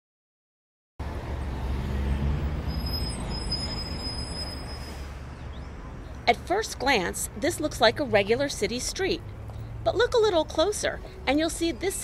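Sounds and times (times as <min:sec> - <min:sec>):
road traffic rumble: 0:01.0 - 0:12.0.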